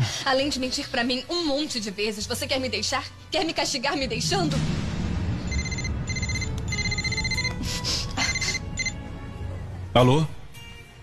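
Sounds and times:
phone ringtone beeping: 5.5 - 7.6, 8.2 - 9.0.

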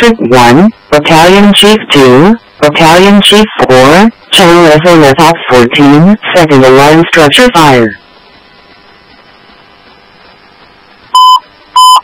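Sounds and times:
radio channel hiss: 0.0 - 11.8
short loud beeps: 11.1 - 12.0.

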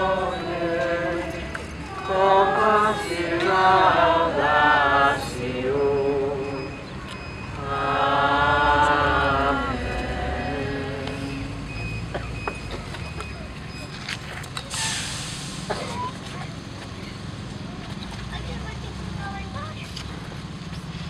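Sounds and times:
low steady rumble: 7.6 - 11.8
short loud hiss: 14.7 - 15.7.

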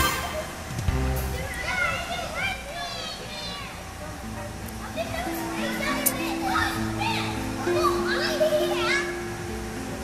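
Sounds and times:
music with long held notes: 0.0 - 1.5, 4.2 - 10.0
children shouting and squealing: 1.4 - 4.0, 4.8 - 9.3.

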